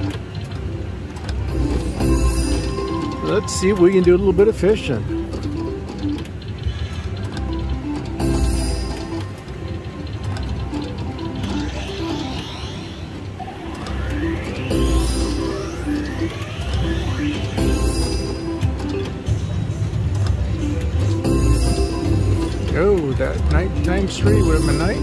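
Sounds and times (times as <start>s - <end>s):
slot machine reel-spin melody: 0.0s - 25.0s
rising sweeping tones: 10.5s - 19.9s.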